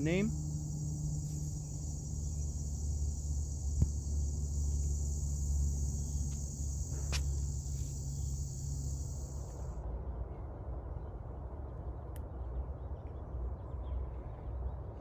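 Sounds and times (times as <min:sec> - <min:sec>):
insects chirping: 0:00.0 - 0:09.8.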